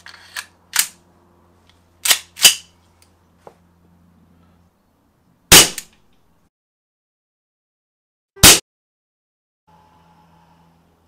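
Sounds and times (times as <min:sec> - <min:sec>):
pistol clicks: 0:00.3 - 0:01.0, 0:02.0 - 0:02.7
air pistol shot: 0:05.5 - 0:05.9, 0:08.4 - 0:08.6.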